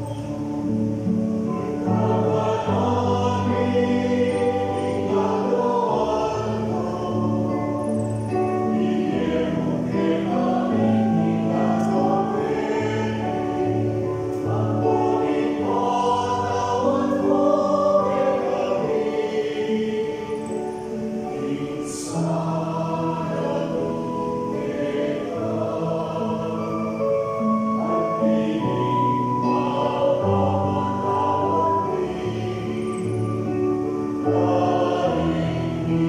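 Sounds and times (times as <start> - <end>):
choir singing a hymn: 0.0 - 36.0
keyboard holding chords: 0.0 - 36.0.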